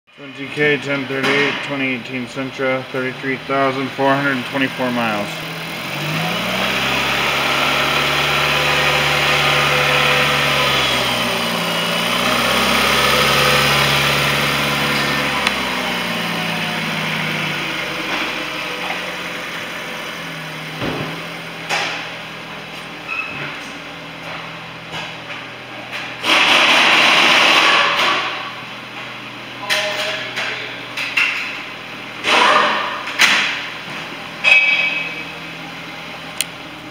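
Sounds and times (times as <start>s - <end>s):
car engine revving and idling: 0.2s - 36.9s.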